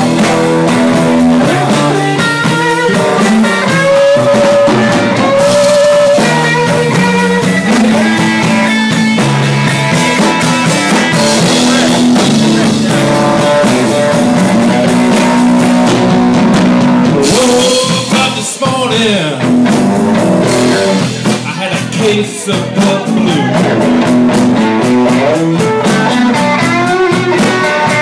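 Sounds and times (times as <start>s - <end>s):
drum kit: 0.0s - 28.0s
electric guitar: 0.0s - 28.0s.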